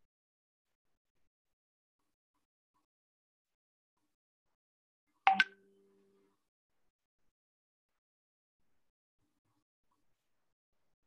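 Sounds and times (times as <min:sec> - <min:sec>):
quick sharp clicks: 0:05.3 - 0:05.6.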